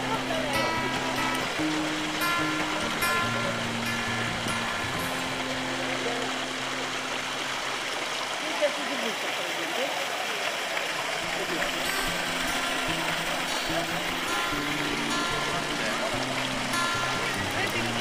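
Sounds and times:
background music low notes: 0:00.0 - 0:08.3, 0:11.2 - 0:18.0
fountain water splashing: 0:00.0 - 0:18.0.

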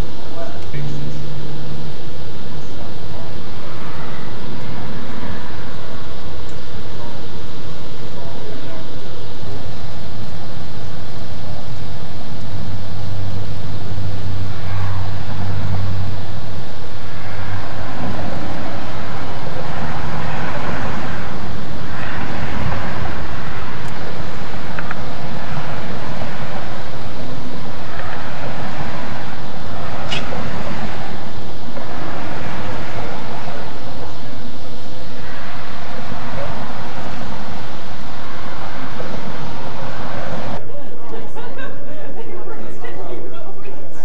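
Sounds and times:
loud steady rushing noise: 0:00.0 - 0:44.0
low hum: 0:00.0 - 0:44.0.

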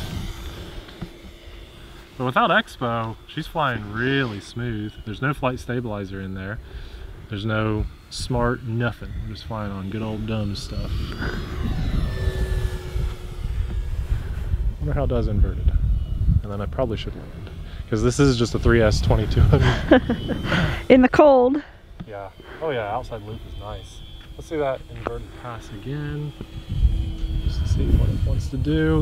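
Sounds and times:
model plane motor humming: 0:00.0 - 0:29.0
steady low rumble: 0:00.0 - 0:29.0.

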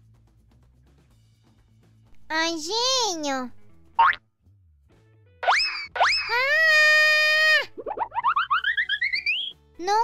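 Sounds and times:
rising comic chirps: 0:05.4 - 0:09.6
cartoon character screaming: 0:05.5 - 0:07.8.

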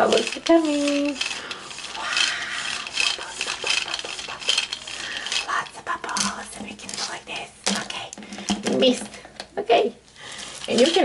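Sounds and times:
plastic doll rubbing swish: 0:00.0 - 0:07.2.

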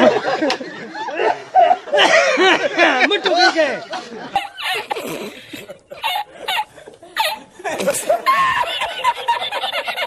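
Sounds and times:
man laughing hard: 0:01.0 - 0:10.0.

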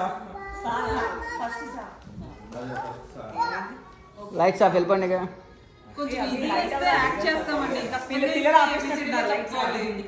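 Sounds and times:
voices talking in a room: 0:00.0 - 0:10.0.

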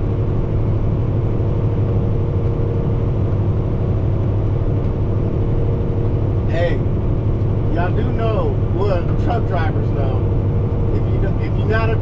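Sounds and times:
road noise: 0:00.0 - 0:12.0
truck engine drone: 0:00.0 - 0:12.0.

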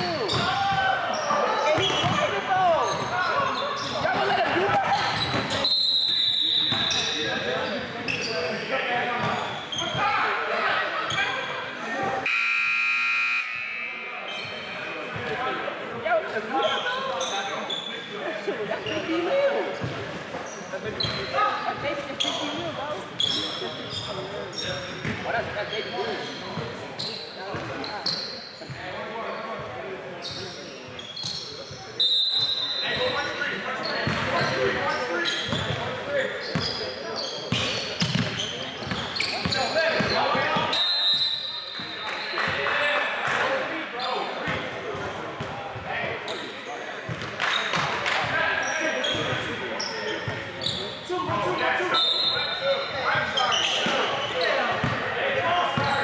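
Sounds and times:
players' voices echoing: 0:00.0 - 0:56.0
electronic buzzer: 0:12.2 - 0:13.9.

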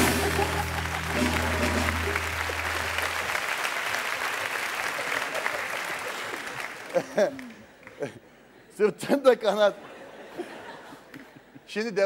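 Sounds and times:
band playing held low chord: 0:00.0 - 0:03.5
audience applauding and laughing: 0:00.0 - 0:08.3, 0:09.8 - 0:11.7.

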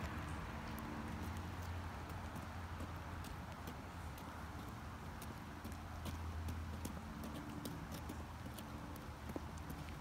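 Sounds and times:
rain patter: 0:00.0 - 0:10.0
rubber boots stepping on wet pavement: 0:00.0 - 0:10.0.

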